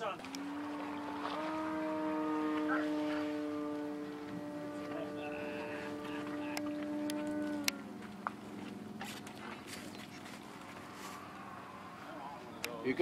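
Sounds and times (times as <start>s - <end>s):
model plane motor droning: 0.2s - 8.0s.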